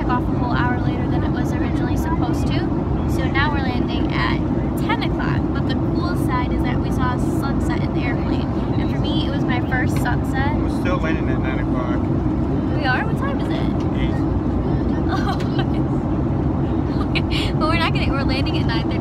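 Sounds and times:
airliner cabin drone: 0:00.0 - 0:19.0
faint voices: 0:00.0 - 0:19.0.

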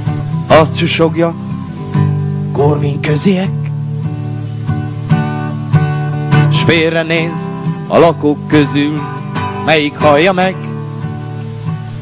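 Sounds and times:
acoustic guitar strumming: 0:00.0 - 0:12.0
person singing: 0:02.5 - 0:03.8, 0:06.3 - 0:10.7.

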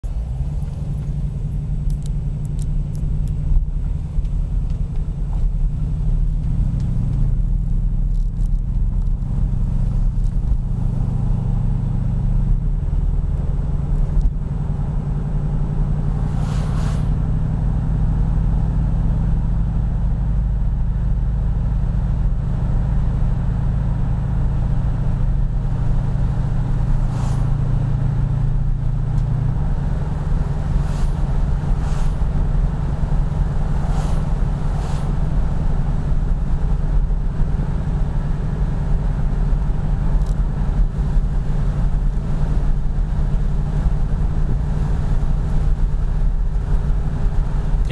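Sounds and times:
car engine throbbing: 0:00.0 - 0:47.9.

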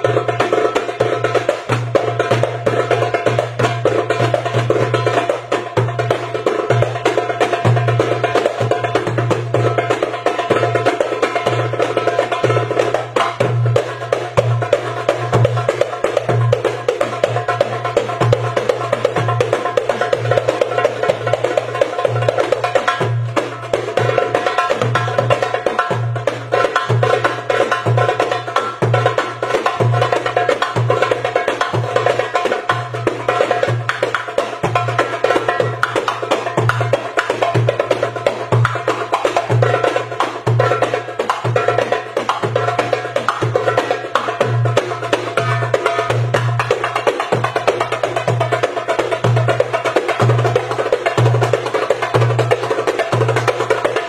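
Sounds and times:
goblet drums played by hand: 0:00.0 - 0:54.0.

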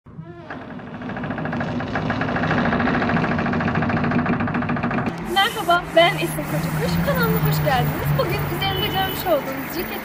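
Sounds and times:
machine humming and clattering: 0:00.5 - 0:08.6.

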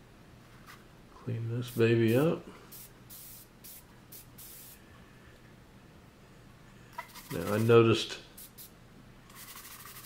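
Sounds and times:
spray can hissing: 0:02.7 - 0:04.8, 0:08.4 - 0:08.7, 0:09.3 - 0:10.0.

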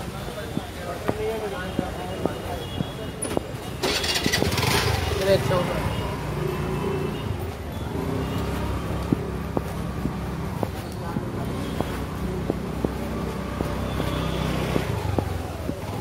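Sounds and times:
motorbike and traffic engines: 0:00.0 - 0:16.0
footsteps: 0:06.2 - 0:16.0.

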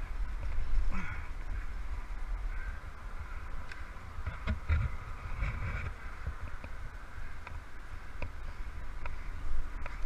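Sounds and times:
wind rumble on microphone: 0:00.0 - 0:10.0
bird calling: 0:00.8 - 0:05.2.

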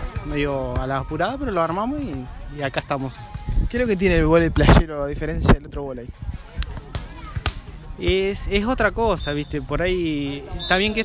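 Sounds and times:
faint background voices: 0:00.0 - 0:08.6
volleyball being hit: 0:06.7 - 0:08.2.

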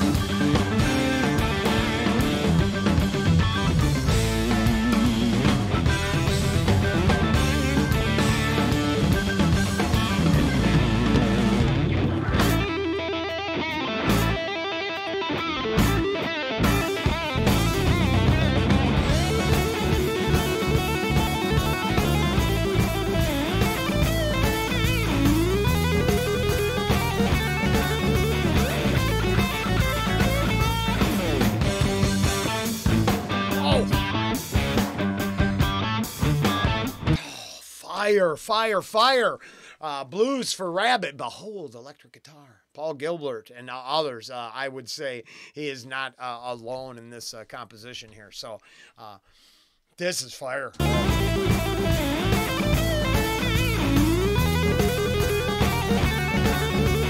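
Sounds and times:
drum kit: 0:00.0 - 0:14.6, 0:15.6 - 0:37.3, 0:50.8 - 0:57.0
electric guitar lead: 0:00.0 - 0:37.2, 0:50.8 - 0:57.0.

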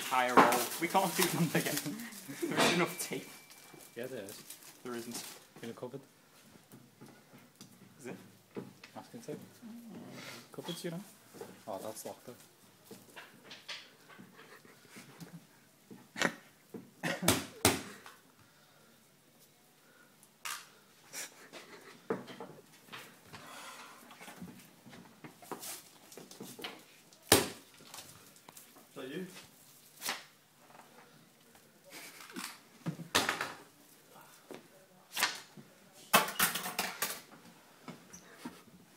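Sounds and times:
tape and clothing ripping: 0:00.0 - 0:02.4, 0:29.7 - 0:30.3
tape rustling: 0:00.0 - 0:05.8, 0:24.4 - 0:30.4.

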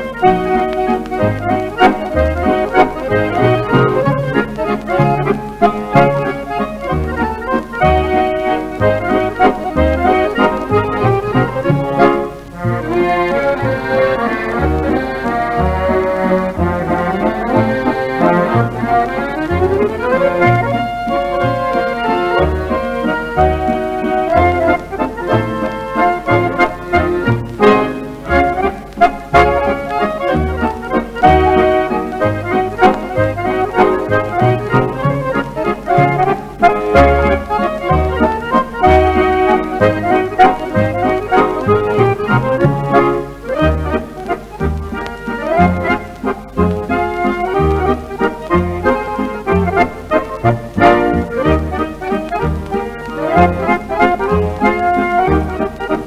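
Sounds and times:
accordion melody: 0:00.0 - 0:56.0
bass notes: 0:00.0 - 0:56.0
guitar accompaniment: 0:00.0 - 0:56.0.

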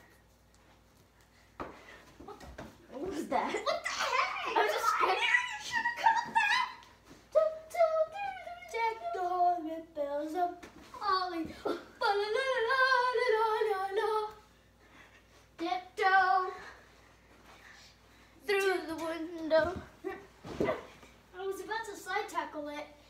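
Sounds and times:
child singing: 0:07.3 - 0:14.4.

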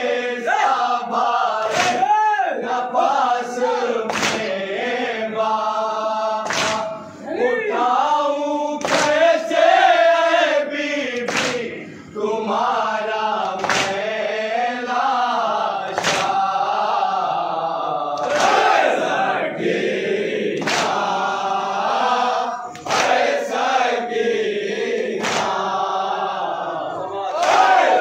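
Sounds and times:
men chanting in unison: 0:00.0 - 0:28.0
chest-beating slaps: 0:01.6 - 0:02.1, 0:04.1 - 0:04.6, 0:06.4 - 0:07.0, 0:08.8 - 0:09.2, 0:11.2 - 0:11.7, 0:13.5 - 0:14.0, 0:15.9 - 0:16.4, 0:20.6 - 0:21.1, 0:25.2 - 0:25.7.

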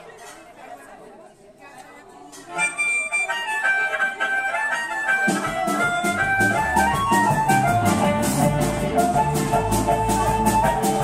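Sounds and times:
people chattering in a bar: 0:00.0 - 0:11.0.

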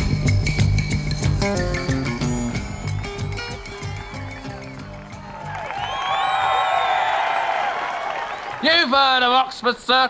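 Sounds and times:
rock music playing: 0:00.0 - 0:06.3
crowd cheering: 0:02.4 - 0:09.7.

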